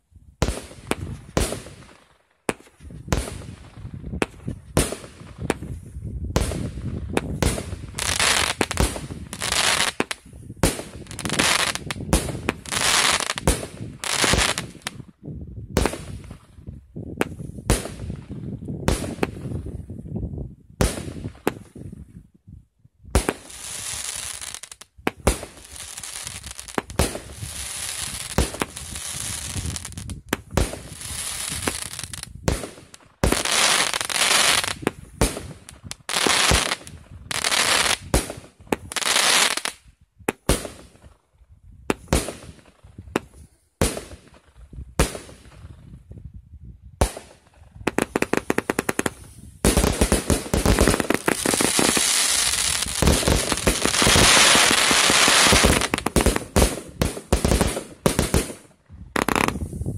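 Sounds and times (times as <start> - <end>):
fireworks shots and crackling: 0.4 - 20.0, 20.8 - 22.0, 23.1 - 41.2, 41.8 - 46.2, 46.9 - 59.9.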